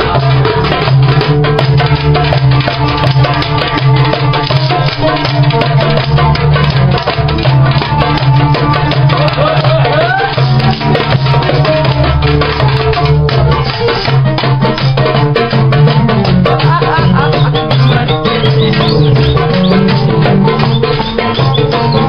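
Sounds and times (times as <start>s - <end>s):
hand drum played fast: 0.0s - 22.0s
low bass line: 0.0s - 22.0s
sliding higher notes: 0.0s - 22.0s.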